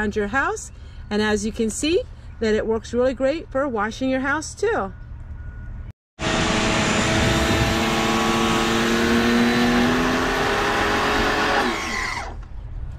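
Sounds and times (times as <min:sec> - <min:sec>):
pressure washer motor humming: 0:06.2 - 0:12.3.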